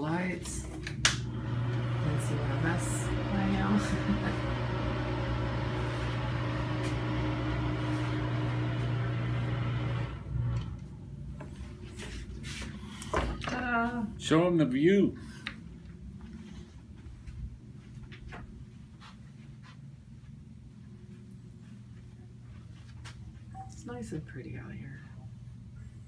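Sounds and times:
exhaust fan humming: 0.0 - 26.0.

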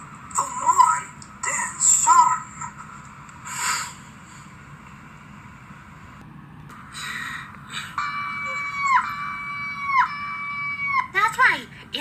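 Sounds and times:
cartoon boy screaming: 8.4 - 11.1.

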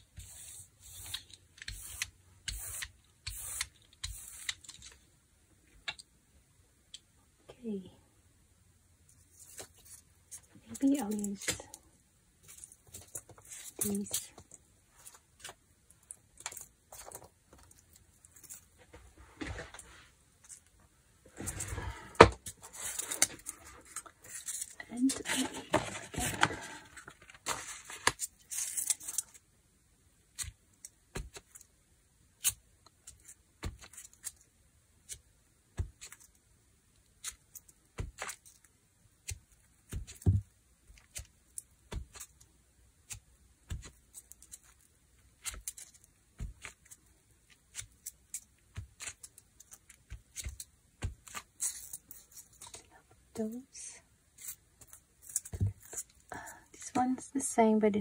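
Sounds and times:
rustling and handling noise: 0.0 - 6.2, 9.0 - 29.6, 30.2 - 58.0.

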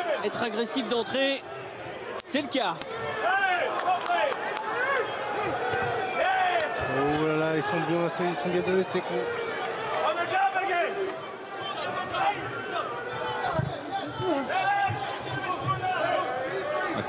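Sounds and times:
crowd shouting: 0.0 - 17.0.

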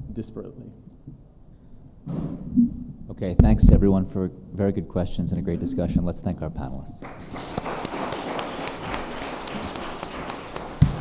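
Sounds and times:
loud low thump: 2.0 - 3.9
audience applauding: 7.0 - 11.0.

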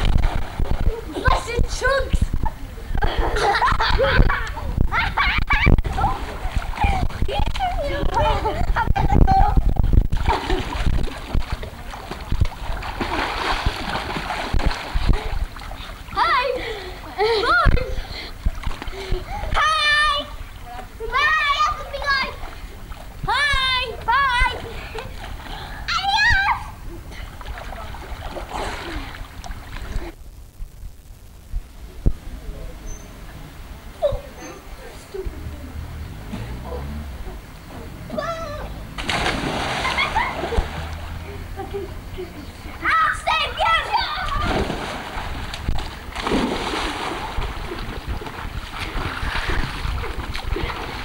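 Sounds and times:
water splashing in pool: 0.0 - 2.0, 5.2 - 8.6, 10.1 - 17.6, 18.4 - 26.6, 27.2 - 30.2, 38.1 - 41.6, 42.9 - 51.0
child calling out: 38.1 - 38.8.

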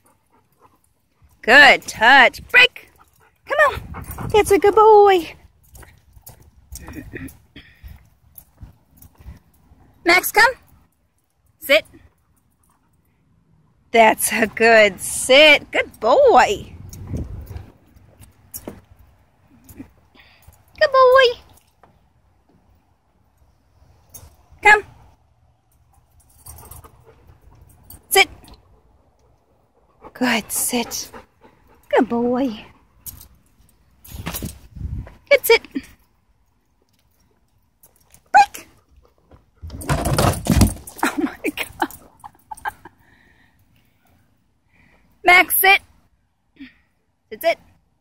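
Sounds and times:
dog collar jingling: 25.7 - 28.5, 39.8 - 42.9.

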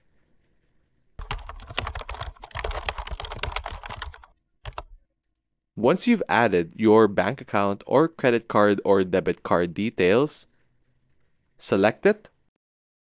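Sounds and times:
computer keyboard typing: 1.2 - 4.9.

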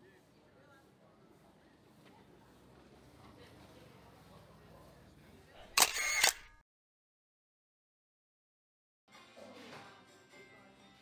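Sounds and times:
camera shutter clicks: 5.7 - 6.6.

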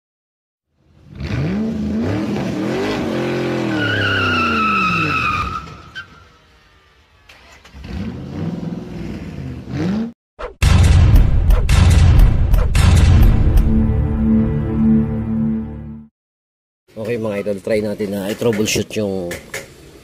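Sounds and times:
sports car engine revving: 1.0 - 3.7
tyre squeal: 3.5 - 6.4.

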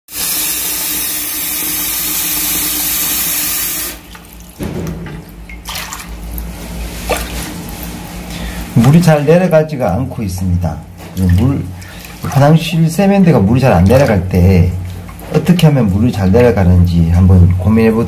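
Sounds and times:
tap running into sink: 3.9 - 6.1.

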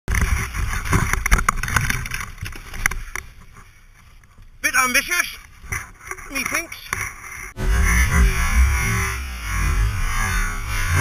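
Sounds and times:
dirt bike engine running: 7.6 - 11.0.

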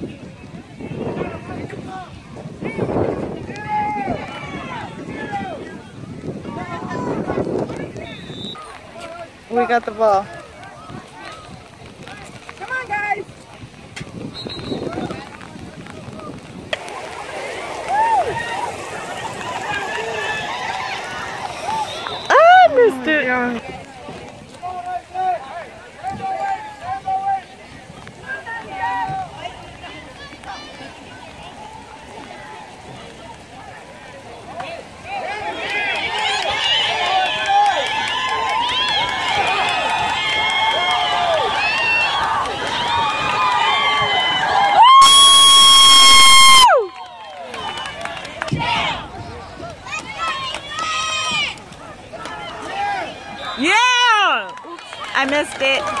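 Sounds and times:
crowd shouting and cheering: 0.0 - 56.0.

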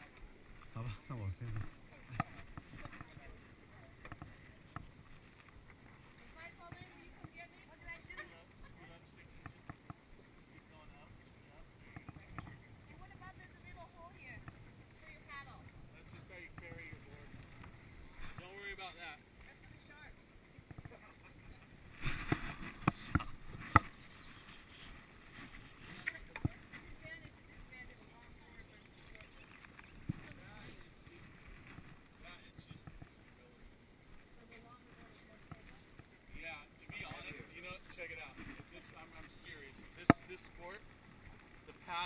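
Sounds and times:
low outdoor background: 0.0 - 42.0.

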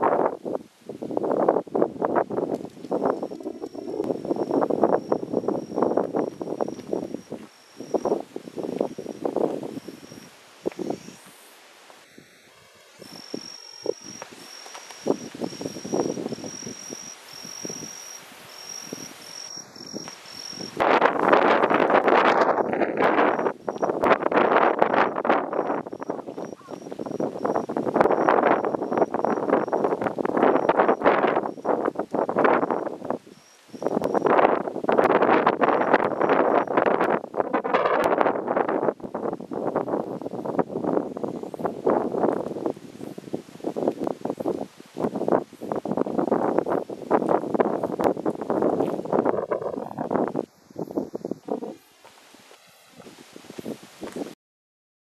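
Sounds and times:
gusty wind on microphone: 0.0 - 54.4
insect shrilling: 2.7 - 36.9, 46.4 - 53.2.

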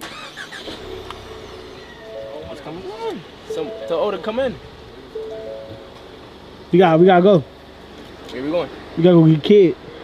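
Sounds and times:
car engine starting and running: 0.0 - 9.0.

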